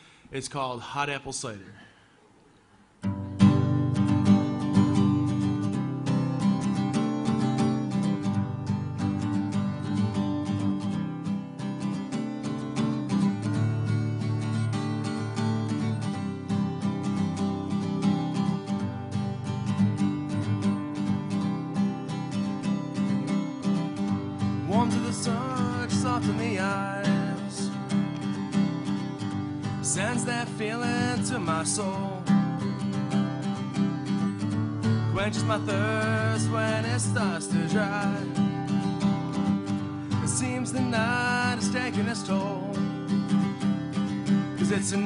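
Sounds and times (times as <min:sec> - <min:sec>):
acoustic guitar strumming: 0:03.0 - 0:45.0.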